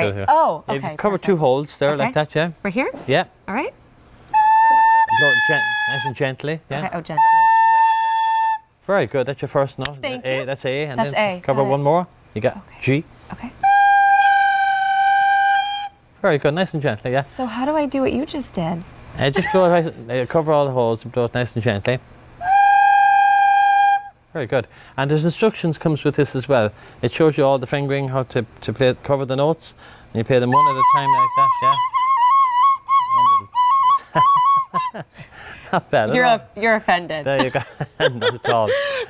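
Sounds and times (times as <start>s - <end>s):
tin whistle long note: 4.3s - 6.3s, 7.2s - 8.7s, 13.6s - 16.0s, 22.4s - 24.2s, 30.5s - 35.0s.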